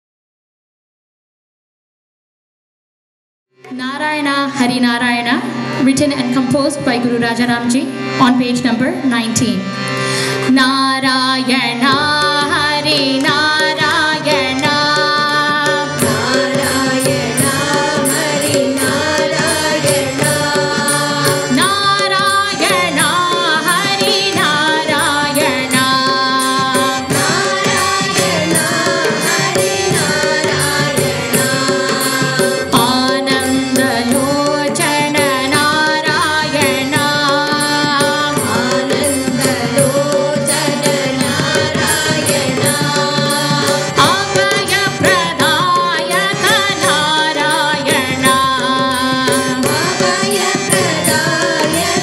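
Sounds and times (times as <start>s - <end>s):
harmonium chords: 3.6s - 52.0s
tabla rhythm: 3.6s - 52.0s
woman and group singing: 12.0s - 52.0s.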